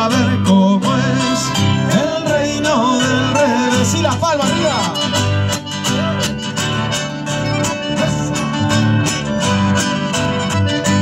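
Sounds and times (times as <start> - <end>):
accordion melody: 0.0 - 11.0
bass line: 0.0 - 11.0
strummed guitars: 0.0 - 11.0.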